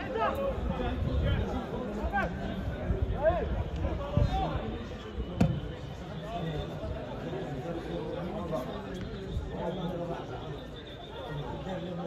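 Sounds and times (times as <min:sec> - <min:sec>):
football kick thud: 0:05.4 - 0:05.6.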